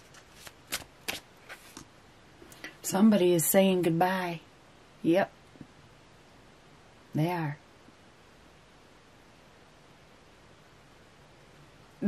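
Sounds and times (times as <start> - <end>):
cards snapping and sliding: 0.0 - 1.8.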